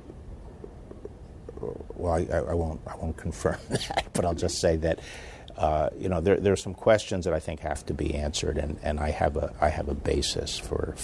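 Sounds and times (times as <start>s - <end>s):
faint mouth clicks: 0.0s - 1.7s
low room hum: 0.0s - 11.0s
man speaking softly: 1.5s - 5.0s, 5.6s - 11.0s.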